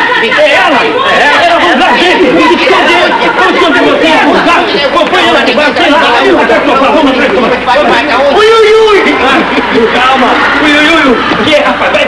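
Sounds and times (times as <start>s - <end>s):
men shouting and talking: 0.0s - 12.0s.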